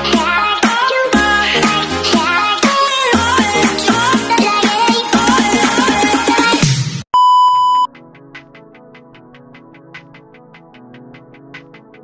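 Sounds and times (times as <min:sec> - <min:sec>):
upbeat electronic music: 0:00.0 - 0:07.1
test-tone beep: 0:07.2 - 0:07.9.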